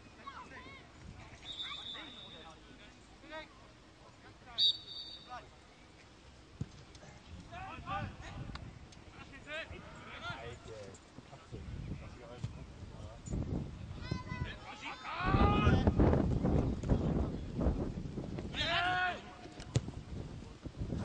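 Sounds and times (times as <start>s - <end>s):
players calling and shouting: 0.0s - 11.4s, 13.9s - 16.0s, 18.4s - 19.9s
referee's whistle blasts: 1.4s - 2.5s, 4.6s - 5.3s.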